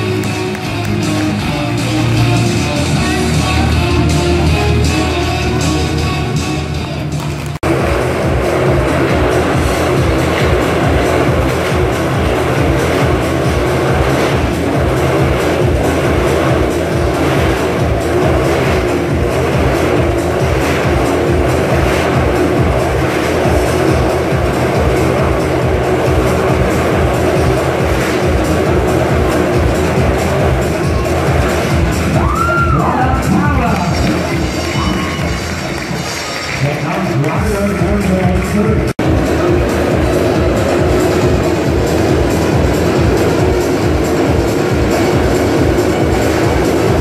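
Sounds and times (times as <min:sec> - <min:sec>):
loud show music with fast beat: 0:00.0 - 0:47.0
motorcycle engines running: 0:00.0 - 0:47.0.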